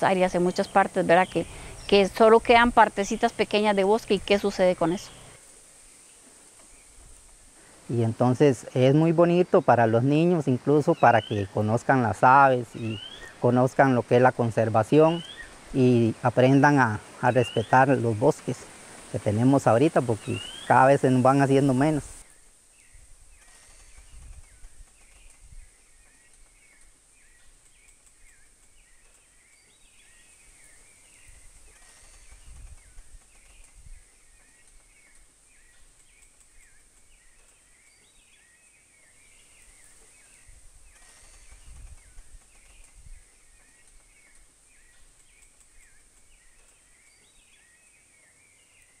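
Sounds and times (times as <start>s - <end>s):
small chirping calls: 0.0s - 7.0s, 12.6s - 13.4s, 14.9s - 49.0s
high insect drone: 0.1s - 8.3s, 16.4s - 22.4s
wind rumbling on microphone: 21.2s - 26.0s, 31.0s - 34.4s, 39.7s - 43.6s.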